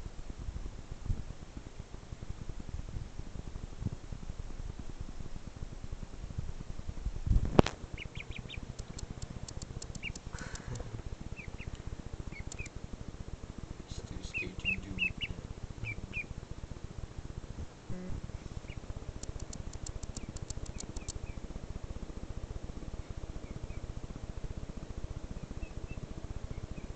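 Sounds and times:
duckling peeping: 7.8s - 12.8s, 13.9s - 16.4s, 18.5s - 21.4s, 23.0s - 23.9s, 25.4s - 26.9s.

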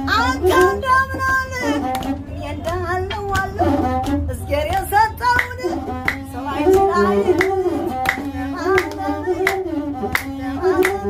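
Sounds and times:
bowed one-string fiddle: 0.0s - 11.0s
woman singing: 0.0s - 11.0s
sharp hand claps: 1.9s - 11.0s.

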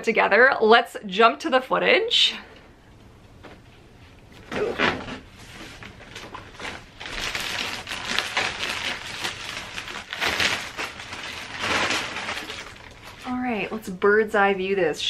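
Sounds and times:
plastic wrap rustling: 4.4s - 13.7s.

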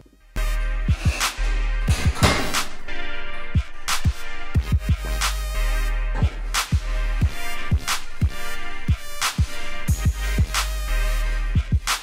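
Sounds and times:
background music with a beat: 0.0s - 12.0s.

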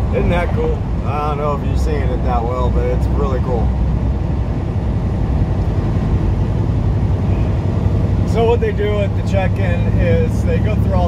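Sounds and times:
truck engine and road noise: 0.0s - 11.0s.

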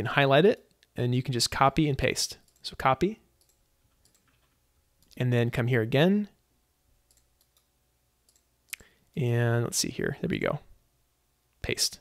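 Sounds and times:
computer mouse clicks: 3.4s - 5.2s, 7.1s - 7.7s, 8.3s - 8.9s
person speaking: 8.7s - 10.8s, 11.6s - 12.0s.

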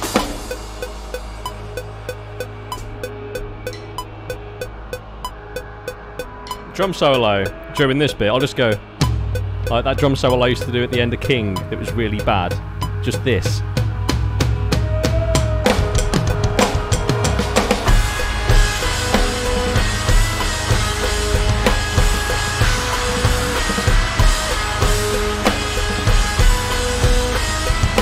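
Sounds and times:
electronic drum fill: 0.0s - 28.0s
full-band backing track: 11.9s - 28.0s.

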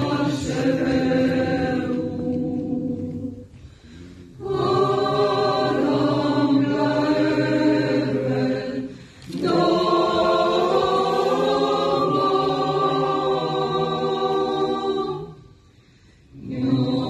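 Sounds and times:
mixed choir singing: 0.0s - 15.6s, 16.3s - 17.0s.

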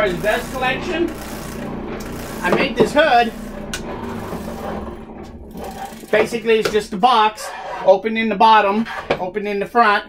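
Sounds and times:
small electric motor humming: 0.0s - 6.5s.

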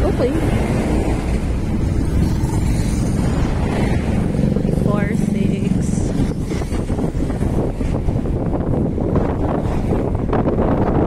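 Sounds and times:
engine and road rumble: 0.0s - 11.0s
steady engine drone: 0.0s - 11.0s.

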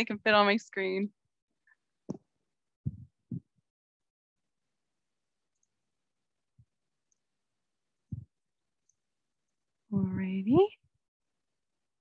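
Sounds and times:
soft low thumps on microphone: 2.8s - 3.6s, 8.1s - 8.4s, 9.9s - 10.5s.

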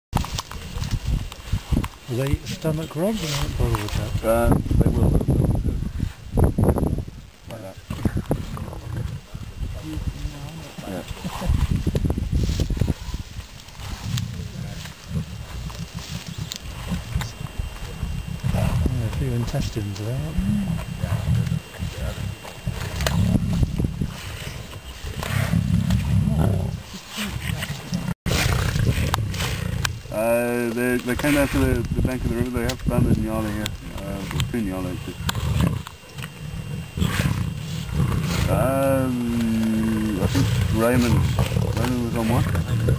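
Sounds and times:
low rumble: 11.1s - 30.8s
lions eating and tearing meat: 11.2s - 19.2s, 19.8s - 30.1s, 30.9s - 42.9s.

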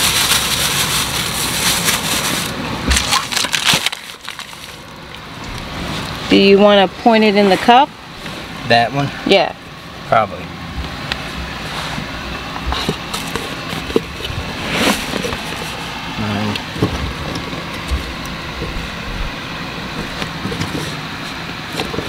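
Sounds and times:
steady background hum: 0.0s - 22.0s.

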